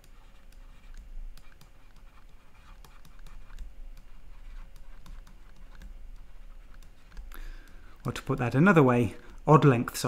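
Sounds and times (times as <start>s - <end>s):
stylus tapping on tablet screen: 0.0s - 8.6s
low steady hum: 0.0s - 10.0s.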